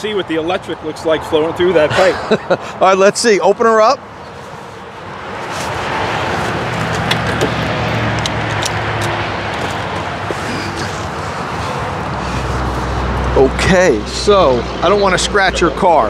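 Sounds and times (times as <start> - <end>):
traffic and wind rushing: 0.0 - 16.0
charging connector clicks and knocks: 8.2 - 9.8.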